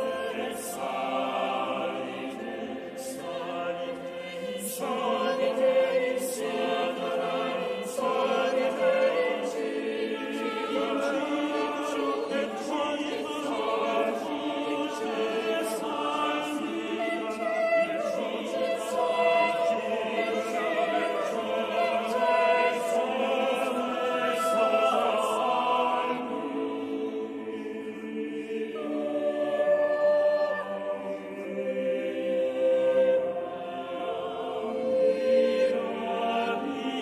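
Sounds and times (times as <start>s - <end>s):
choir singing: 0.0s - 37.0s.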